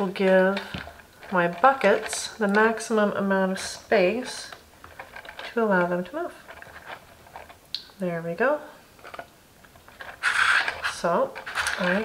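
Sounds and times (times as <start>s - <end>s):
cardstock rustling and scraping: 0.2s - 7.6s, 9.0s - 12.0s.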